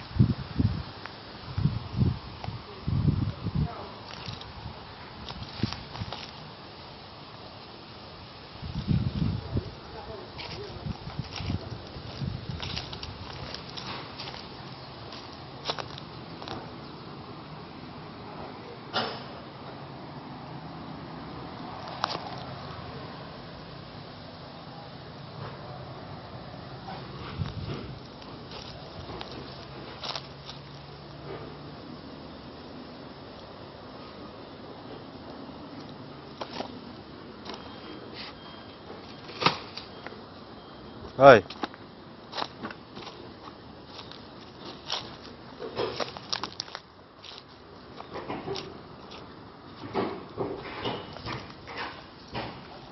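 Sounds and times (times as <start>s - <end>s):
rustling in dry grass and leaves: 0.0s - 17.2s, 26.4s - 38.4s, 41.5s - 49.9s.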